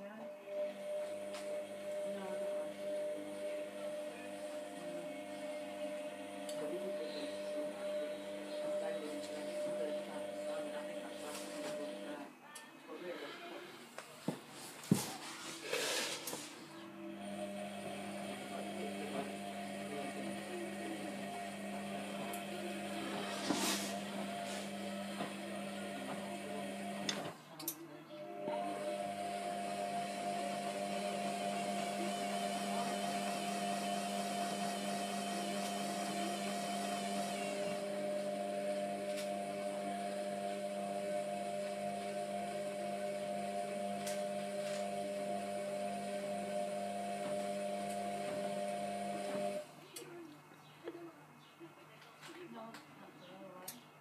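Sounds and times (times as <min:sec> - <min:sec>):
washing machine motor humming: 0:00.0 - 0:12.3, 0:15.7 - 0:27.4, 0:28.2 - 0:50.2.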